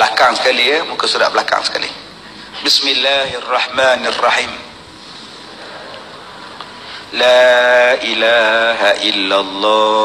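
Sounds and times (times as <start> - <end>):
recording background hiss: 0.0 - 10.0.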